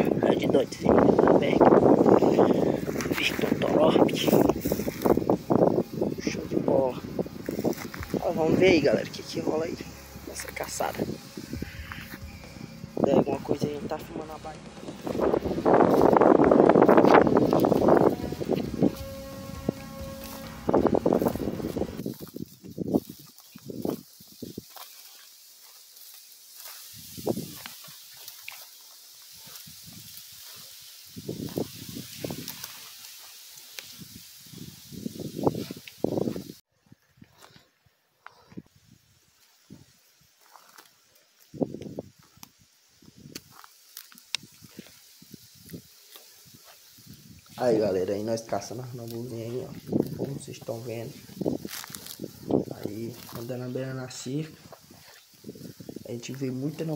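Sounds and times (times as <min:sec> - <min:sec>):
footsteps in dry grass: 0:00.0 - 0:56.9.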